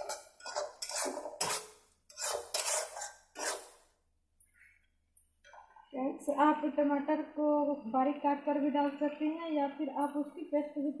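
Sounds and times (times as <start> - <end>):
steel spatula scraping a frying pan: 0.0 - 3.9.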